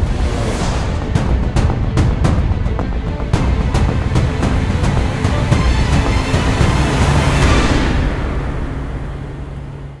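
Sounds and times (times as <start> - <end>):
low rushing noise: 0.0 - 10.0.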